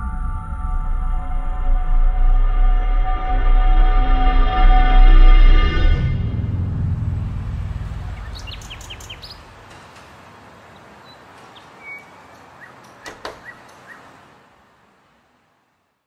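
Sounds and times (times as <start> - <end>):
low rumble of music: 0.0 - 9.7
bird chirps: 7.9 - 14.2.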